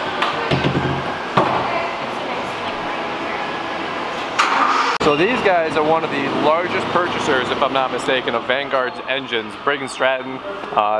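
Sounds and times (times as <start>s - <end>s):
factory assembly hall noise: 0.0s - 10.9s.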